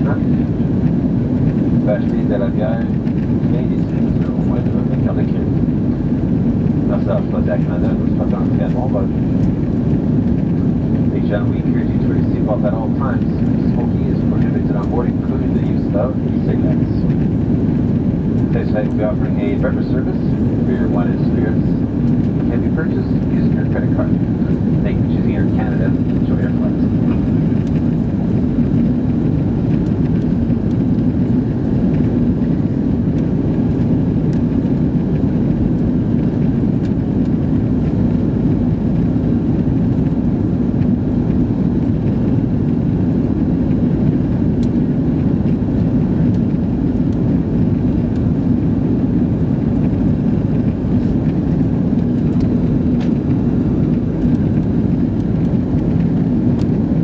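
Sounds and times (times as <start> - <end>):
airplane cabin engine rumble: 0.0 - 57.0
steady low hum: 0.0 - 57.0.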